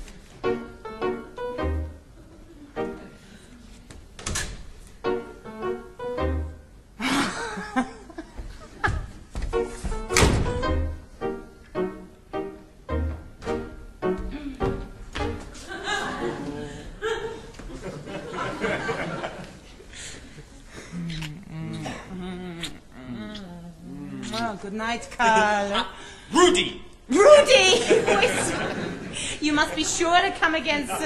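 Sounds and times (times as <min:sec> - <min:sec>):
thuds and knocks: 0:08.9 - 0:10.6
person cooing: 0:20.9 - 0:24.2.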